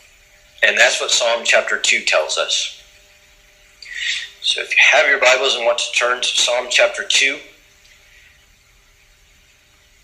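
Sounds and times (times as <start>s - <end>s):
faint hiss: 0.0s - 10.0s
low hum: 0.0s - 10.0s.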